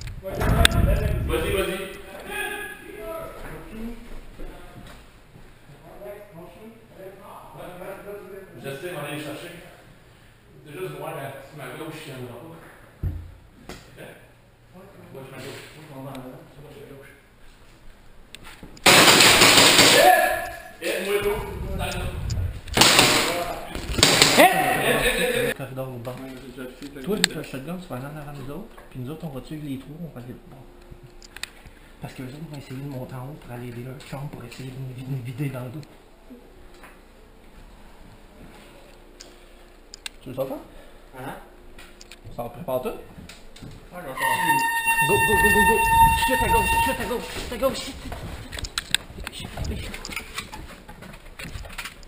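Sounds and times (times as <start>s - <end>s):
airsoft gunfire bursts: 18.8s - 20.0s
people shouting: 19.8s - 20.8s, 24.2s - 25.5s
signal horn steady tone: 44.2s - 47.4s.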